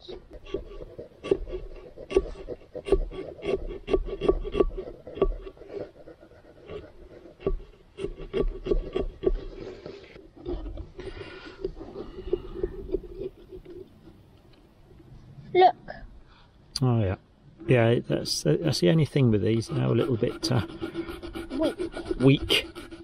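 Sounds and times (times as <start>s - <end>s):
saw rasping through pumpkin: 0.0s - 13.9s, 18.2s - 23.0s.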